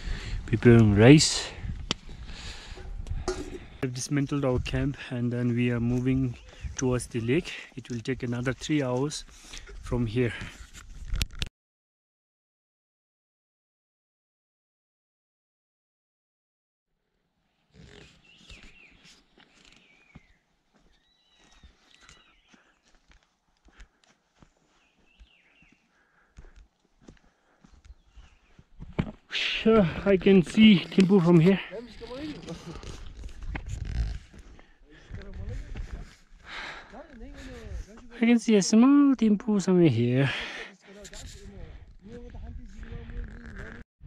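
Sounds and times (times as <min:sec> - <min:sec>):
wind buffeting microphone: 0:00.0 - 0:03.8, 0:41.2 - 0:43.8.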